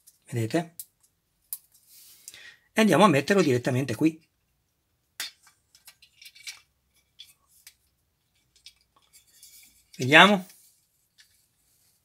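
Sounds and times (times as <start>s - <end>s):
clicks of plastic parts handled: 5.2s - 9.2s.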